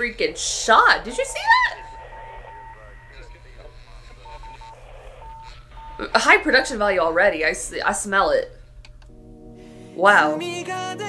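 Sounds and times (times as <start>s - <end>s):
faint voices: 0.0s - 8.7s
electronic beep tone pulsing: 0.0s - 9.0s
steady low hum: 0.0s - 9.9s.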